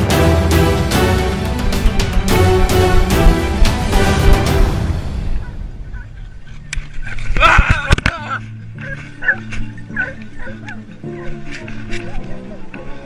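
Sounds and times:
hunting dogs barking and yelping: 5.3s - 7.3s, 8.5s - 13.0s.

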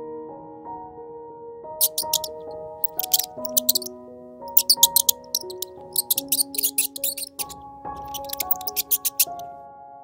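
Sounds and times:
slow background music: 0.0s - 10.0s
mouse squeaking: 1.8s - 3.9s, 4.5s - 9.4s.

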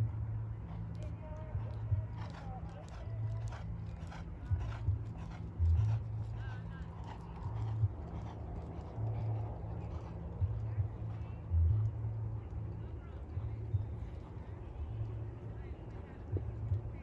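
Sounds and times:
wind rumble on microphone: 0.0s - 17.0s
faint voices: 0.5s - 17.0s
horse hooves on sand: 0.6s - 17.0s.

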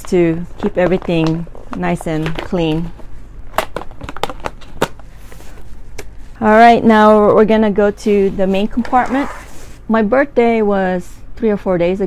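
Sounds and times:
plastic bag crinkling: 0.0s - 5.7s.

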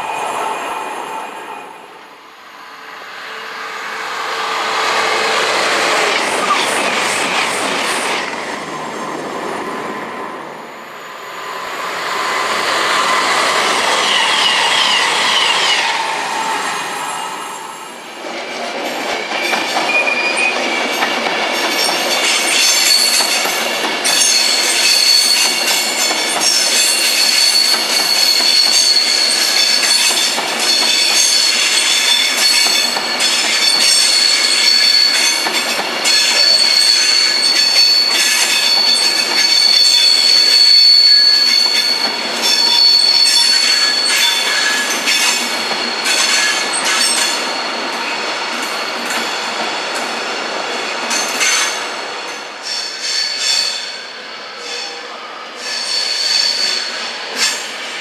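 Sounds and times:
train wheels squealing: 11.4s - 17.9s, 19.3s - 49.6s, 52.6s - 58.0s.

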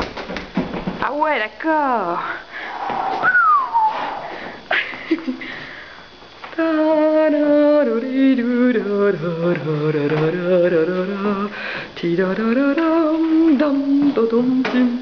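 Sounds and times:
person singing with vibrato: 6.5s - 15.0s.

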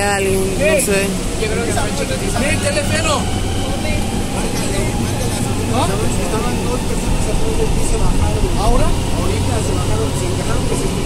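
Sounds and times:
passengers' voices: 0.0s - 11.0s
train car low rumble: 0.0s - 11.0s.

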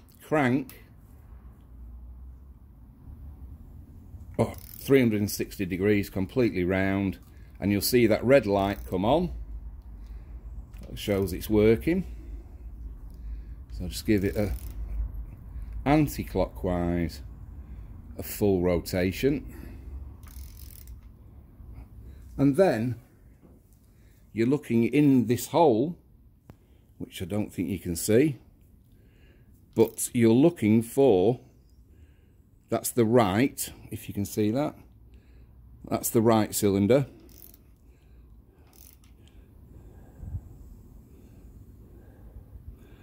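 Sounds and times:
ratchet spanner clicking: 4.4s - 5.5s, 8.5s - 9.0s, 14.2s - 15.0s, 20.2s - 21.2s, 37.1s - 38.0s, 38.6s - 39.4s.

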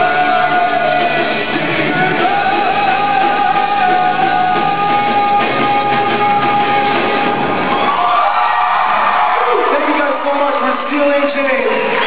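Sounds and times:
rock band with brass chord: 0.0s - 8.0s.

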